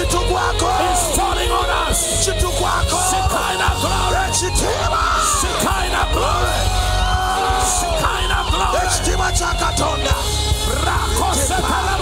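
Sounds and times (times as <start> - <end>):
low keyboard drone: 0.0 - 12.0.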